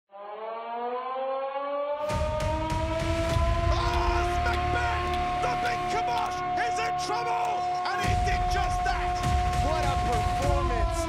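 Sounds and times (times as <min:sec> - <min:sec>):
sharp hits: 0:02.0 - 0:11.0
deep rumble: 0:02.1 - 0:06.7, 0:08.1 - 0:11.0.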